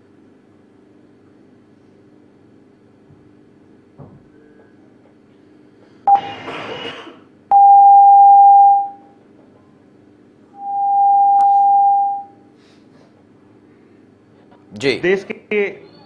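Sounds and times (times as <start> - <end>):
long electronic beeps: 7.5 - 9.0, 10.6 - 12.4.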